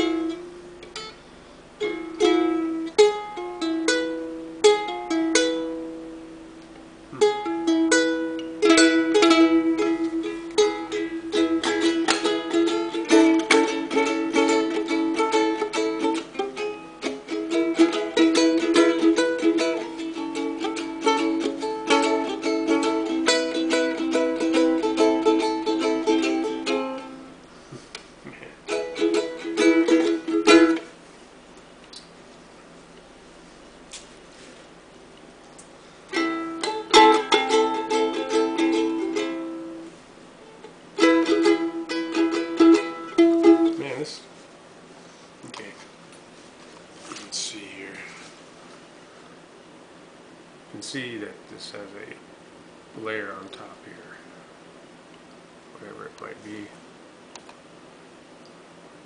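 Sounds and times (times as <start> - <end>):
ukulele strumming: 0.0 - 1.2, 1.8 - 27.4, 28.3 - 31.0, 36.1 - 44.2.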